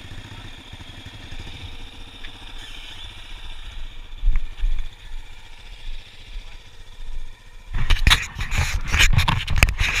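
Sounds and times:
quad engine running: 0.0 - 10.0.

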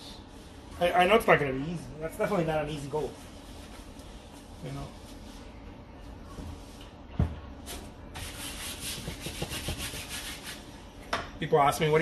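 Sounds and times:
palette knife scraping paint: 8.2 - 10.6.

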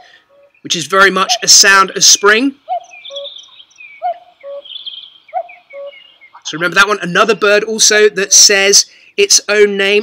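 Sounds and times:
cuckoo calling: 0.0 - 1.6, 2.6 - 6.8
songbirds chirping: 0.0 - 10.0.

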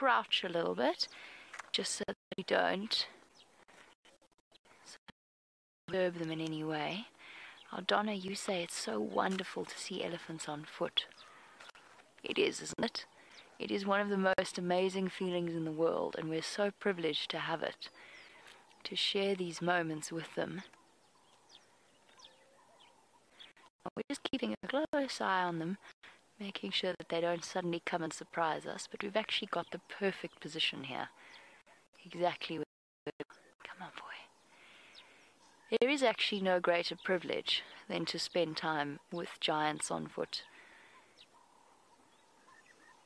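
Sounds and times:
faint bird chirps: 20.6 - 23.7, 40.3 - 43.0.

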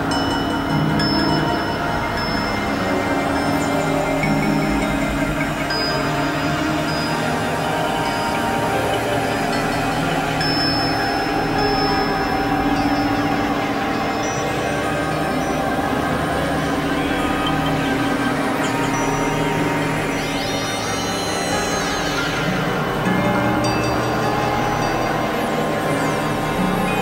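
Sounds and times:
dark synthesizer drone: 0.0 - 27.0
thin high gliding tones: 0.0 - 27.0.

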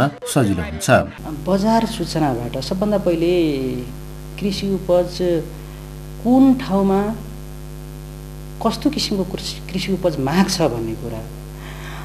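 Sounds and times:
man talking: 0.0 - 5.5, 8.6 - 11.3
electrical mains hum: 1.2 - 12.0.

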